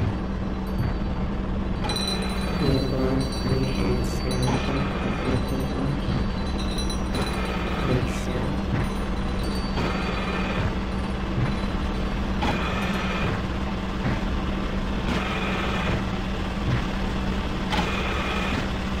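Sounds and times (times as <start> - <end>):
dark noisy instrumental music: 0.0 - 19.0.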